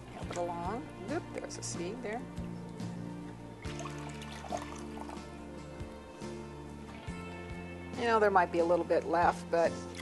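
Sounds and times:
water trickling: 0.0 - 1.6, 3.6 - 5.4, 9.7 - 10.0
music of held chords: 0.0 - 10.0.

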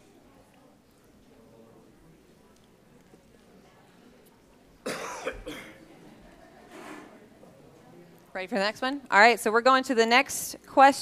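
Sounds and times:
person coughing: 4.8 - 5.8.

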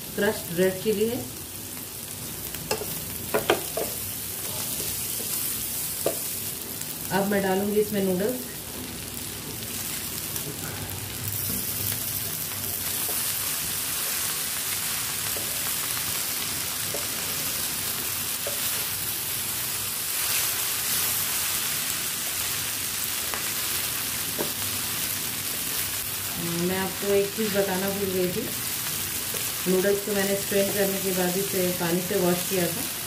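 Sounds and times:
food sizzling in a wok: 0.0 - 33.0
spatula knocking against pan: 2.7 - 4.0.

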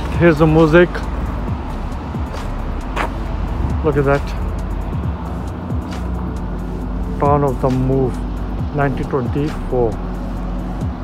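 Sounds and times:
car interior rumble: 0.0 - 11.0.

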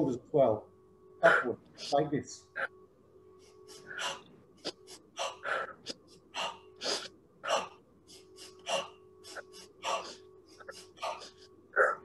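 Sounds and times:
person breathing rapidly: 3.4 - 12.0.

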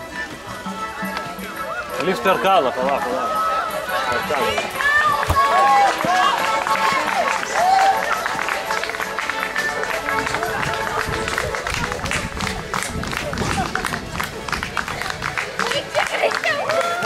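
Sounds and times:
music: 0.0 - 17.0
people calling and shouting: 0.0 - 17.0.

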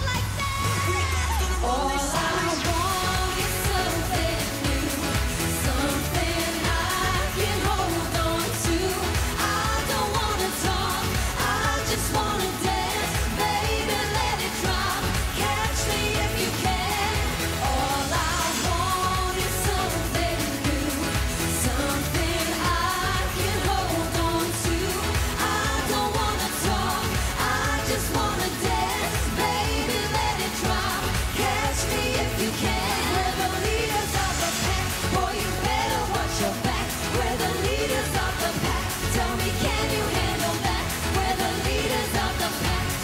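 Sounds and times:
dance-pop backing track: 0.0 - 43.0
women singing: 0.0 - 43.0.

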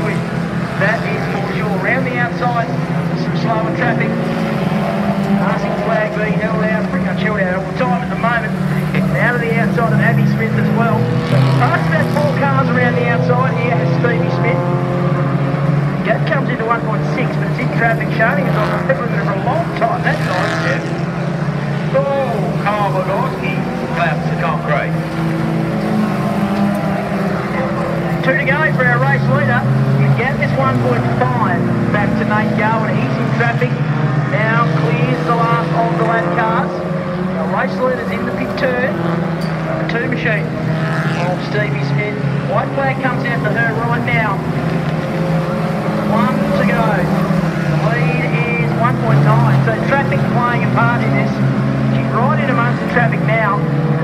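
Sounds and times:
commentator talking: 0.0 - 15.4, 16.0 - 25.1, 25.8 - 54.0
race car engines at high revs: 0.0 - 54.0.

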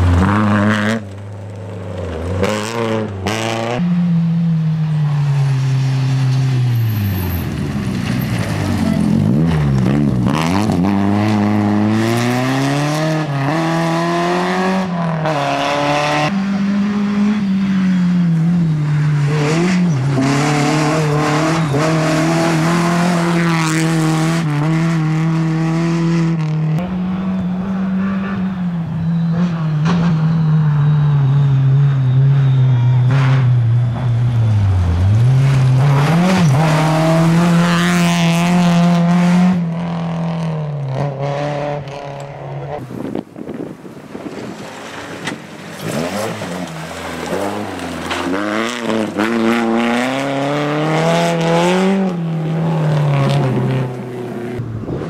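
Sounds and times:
rally car engine revving: 0.0 - 43.0, 44.2 - 55.0.

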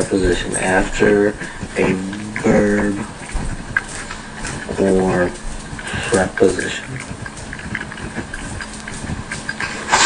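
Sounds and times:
light steady hum: 0.0 - 10.0.

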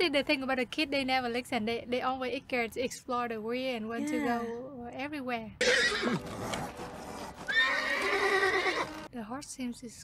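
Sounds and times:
horse whinnying: 5.6 - 6.7, 7.4 - 9.0.

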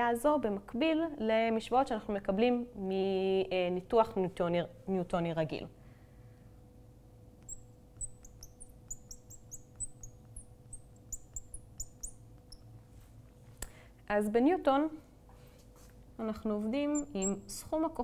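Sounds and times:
faint steady hum: 0.0 - 18.0
marker squeaking on glass: 7.4 - 12.7, 16.9 - 17.6.

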